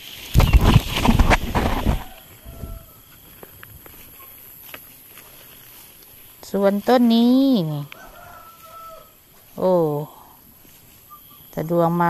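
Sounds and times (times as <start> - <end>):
rooster crowing faintly: 1.8 - 3.2, 7.9 - 9.2.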